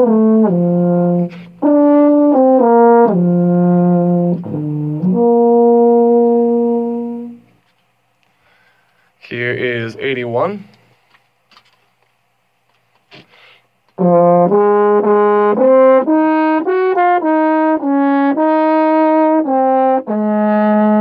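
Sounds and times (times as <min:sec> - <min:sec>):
solo brass melody: 0:00.0 - 0:07.6, 0:14.0 - 0:21.0.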